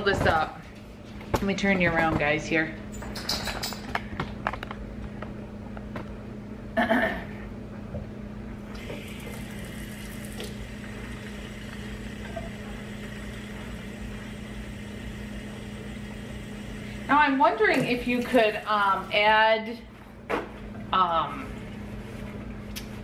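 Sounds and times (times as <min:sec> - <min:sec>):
steady low hum: 0:00.0 - 0:23.0
faucet filling a plastic bottle: 0:08.8 - 0:17.1.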